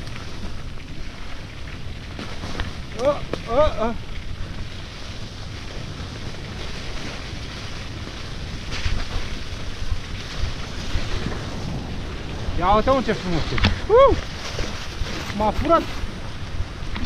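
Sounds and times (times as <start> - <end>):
bike rattle: 0.0 - 17.0
bike tyre rumble: 0.0 - 17.0
wind rushing over microphone: 0.0 - 17.0.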